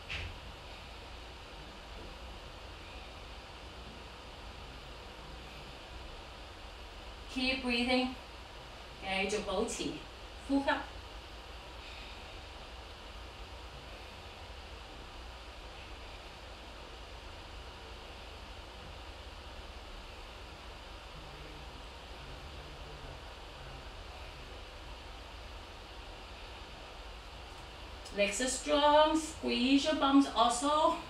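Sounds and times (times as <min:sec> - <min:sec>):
background hiss: 0:00.0 - 0:31.0
low hum: 0:00.0 - 0:31.0.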